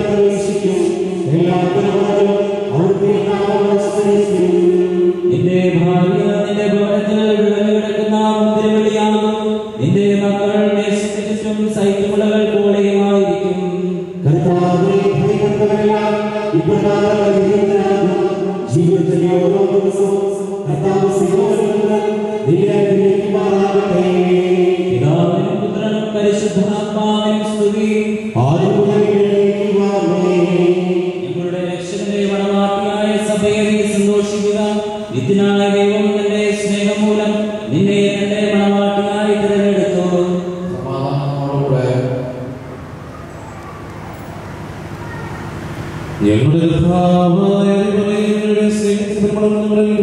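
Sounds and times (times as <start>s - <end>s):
voices singing a chant: 0.0s - 6.8s, 14.2s - 49.2s.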